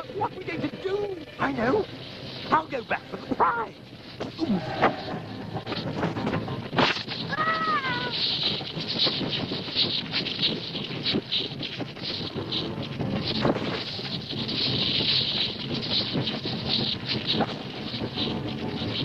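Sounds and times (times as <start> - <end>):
herd of hooves stampeding: 0.0 - 19.0.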